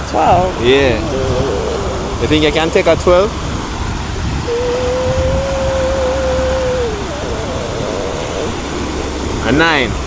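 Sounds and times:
outdoor background rush: 0.0 - 10.0
woman humming: 0.1 - 2.5, 4.4 - 8.8.

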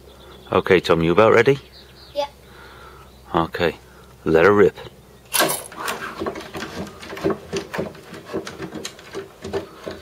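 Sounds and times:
wooden trebuchet clicks and knocks: 5.3 - 10.0.

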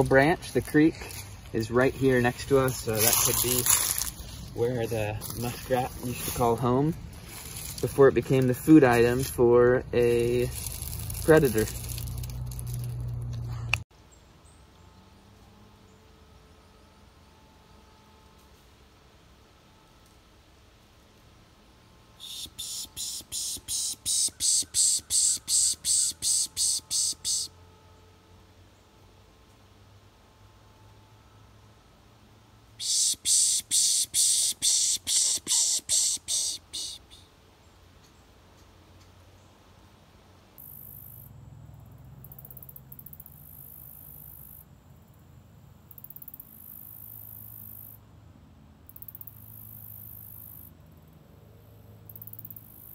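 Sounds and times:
faint low rumble: 0.0 - 22.2
insects shrill buzzing: 22.1 - 27.6, 32.8 - 37.3, 40.6 - 41.4, 42.2 - 44.7, 45.9 - 48.0, 48.9 - 50.8
harsh high-pitched animal calls: 22.2 - 27.5, 32.8 - 37.2
insects pulsing trills: 22.2 - 27.5, 32.8 - 37.3, 40.6 - 45.2, 45.9 - 48.1, 48.9 - 51.1, 52.1 - 52.9.

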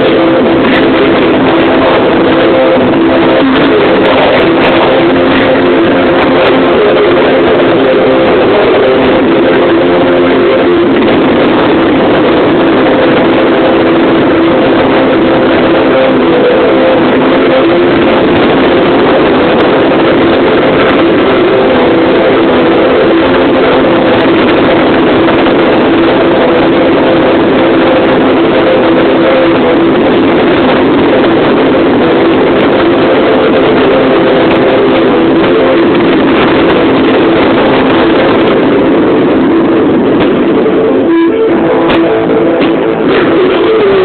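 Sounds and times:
fireworks distorted roar: 0.0 - 44.0
steady humming tones: 0.0 - 44.0.

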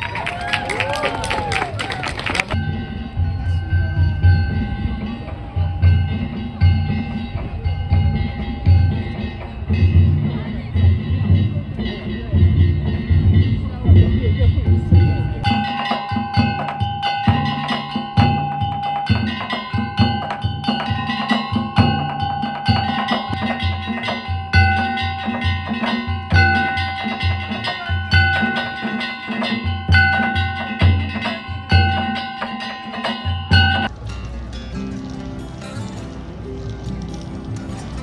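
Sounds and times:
taiko drums beating: 2.5 - 33.9
metal gongs clanging: 2.5 - 38.0.

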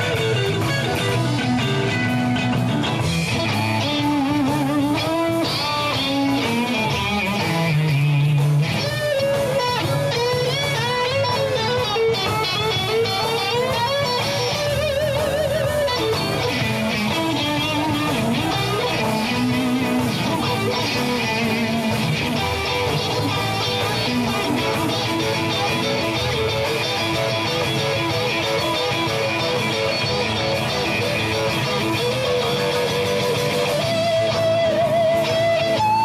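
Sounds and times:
bass and drums: 0.0 - 36.0
electric guitar lead: 0.0 - 36.0.

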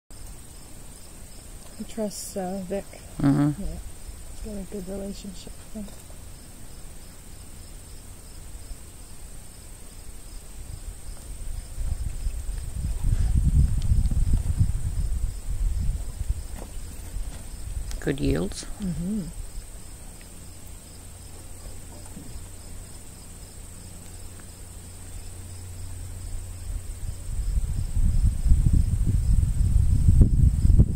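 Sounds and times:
insects trilling: 0.1 - 30.8
low rumble: 10.5 - 20.2, 24.8 - 30.9.

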